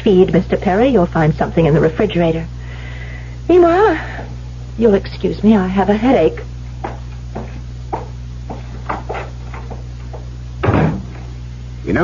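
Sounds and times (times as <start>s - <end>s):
low recording hum: 0.0s - 12.0s
door shutting: 10.6s - 11.3s.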